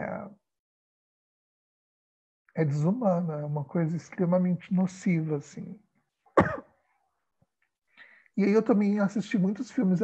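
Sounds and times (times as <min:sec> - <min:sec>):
person coughing: 0:06.4 - 0:06.7.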